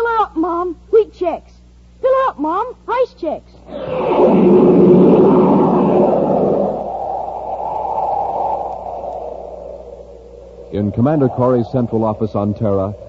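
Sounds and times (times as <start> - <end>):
noisy roar sound effect: 3.7 - 11.7.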